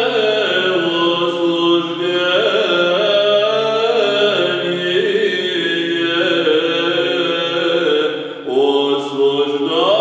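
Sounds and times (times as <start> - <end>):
men chanting melody: 0.0 - 10.0.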